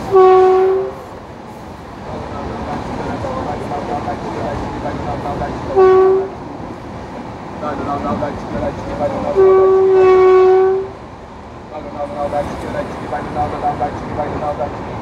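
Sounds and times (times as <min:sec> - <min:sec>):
locomotive horn blasts: 0:00.0 - 0:01.1, 0:05.7 - 0:06.4, 0:09.2 - 0:11.0
train wheels rumbling on track: 0:00.0 - 0:15.0.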